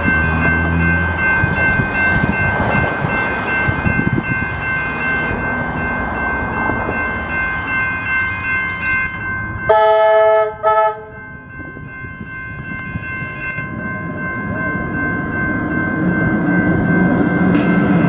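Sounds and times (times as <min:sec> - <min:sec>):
level crossing bells ringing: 0:00.0 - 0:18.0
train rumbling on rails: 0:00.0 - 0:18.0
train horn: 0:09.7 - 0:11.2.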